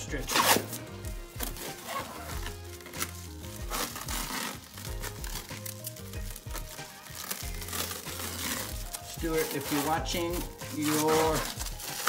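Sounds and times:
background music with bass: 0.0s - 12.0s
plastic wrap crinkling: 0.0s - 12.0s.

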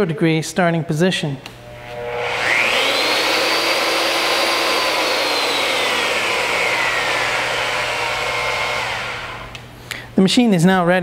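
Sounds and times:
electric motor whining: 1.6s - 9.6s.

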